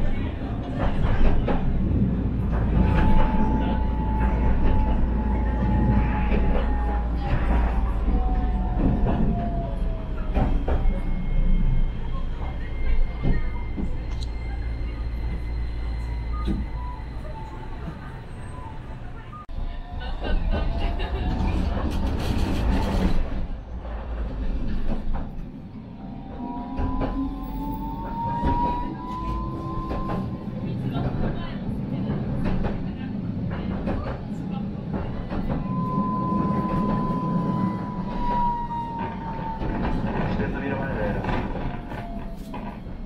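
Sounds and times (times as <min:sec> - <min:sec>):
tram rumble: 0:00.0 - 0:43.0
tram motor whine: 0:00.1 - 0:32.8, 0:33.4 - 0:43.0.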